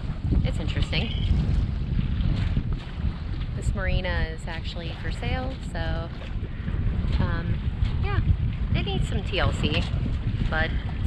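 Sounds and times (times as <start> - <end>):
choppy water washing: 0.0 - 11.0
wind buffeting microphone: 0.0 - 11.0.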